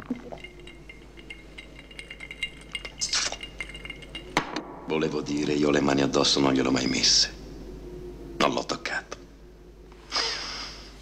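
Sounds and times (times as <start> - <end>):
glassware and ice clinking: 0.0 - 5.4.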